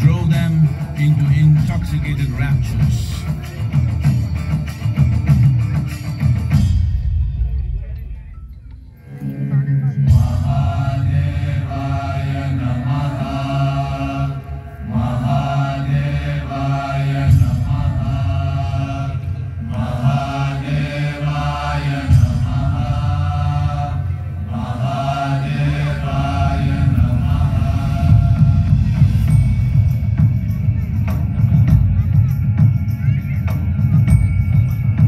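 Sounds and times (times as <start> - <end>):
mantra chanting with music: 0.0 - 3.8, 7.8 - 35.0
low steady drone: 7.4 - 32.4.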